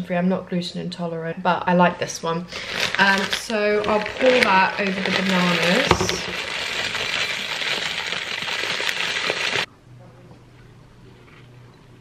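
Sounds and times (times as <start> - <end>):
granola rattling into a bowl: 2.7 - 9.7
faint low hum: 9.7 - 12.0.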